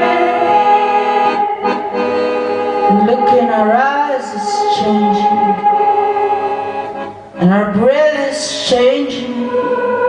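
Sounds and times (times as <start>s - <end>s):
accordion chords: 0.0s - 10.0s.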